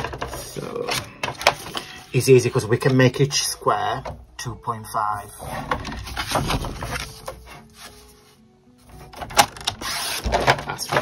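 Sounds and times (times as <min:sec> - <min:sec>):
cardstock rustling and scraping: 0:00.0 - 0:02.1, 0:05.4 - 0:11.0
soft background music: 0:00.0 - 0:11.0.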